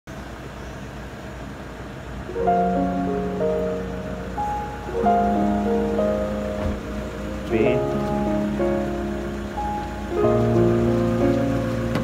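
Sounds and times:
low uneven outdoor rumble: 0:00.1 - 0:12.0.

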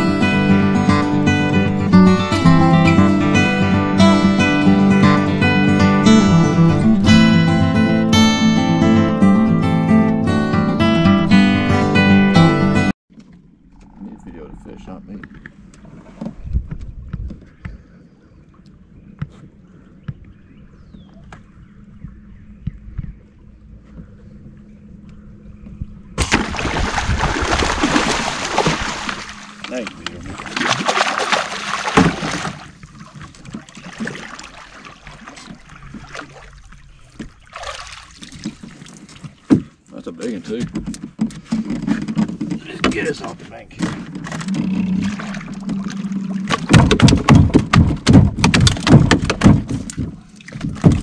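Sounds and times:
fish thrashing and splashing: 0:26.2 - 0:39.5, 0:43.8 - 0:51.0.

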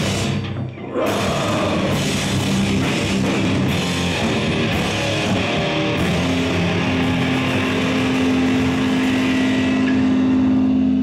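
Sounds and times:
heavy metal band playing: 0:00.0 - 0:11.0.

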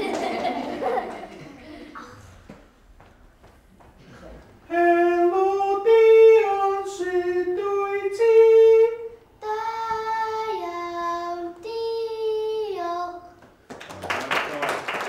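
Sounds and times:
child singing a melody: 0:09.4 - 0:13.4.

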